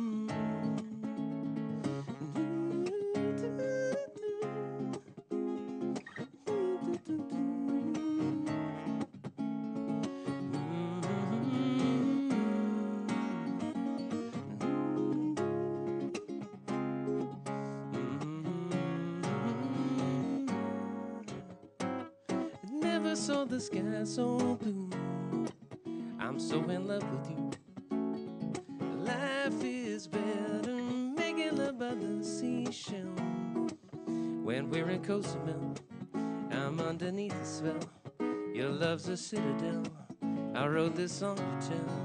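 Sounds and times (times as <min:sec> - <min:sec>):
acoustic guitar strumming: 0:00.0 - 0:42.0
sliding guitar melody: 0:00.0 - 0:42.0.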